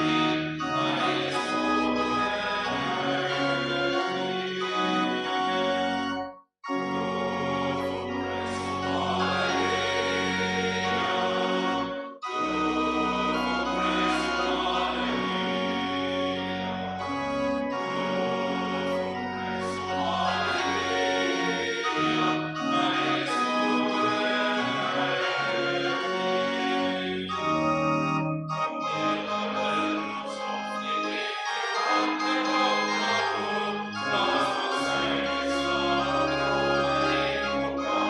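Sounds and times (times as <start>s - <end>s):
organ playing hymn chords: 0.0s - 38.0s.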